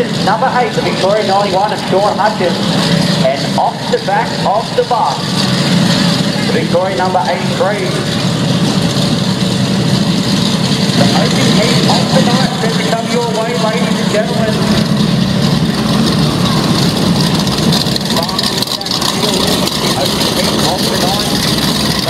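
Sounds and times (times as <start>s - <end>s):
announcer speaking over loudspeaker: 0.0s - 2.6s, 3.2s - 5.3s, 6.4s - 8.1s, 11.0s - 14.8s
race car engines running: 0.0s - 22.0s.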